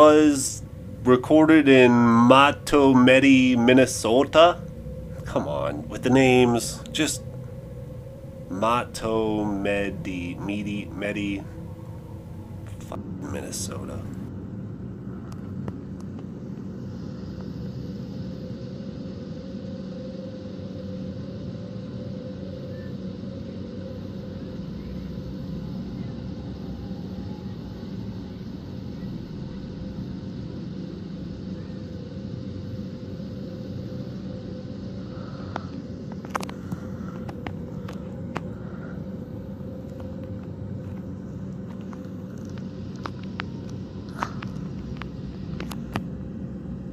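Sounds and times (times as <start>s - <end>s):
low machine hum and rumble: 0.0s - 46.9s.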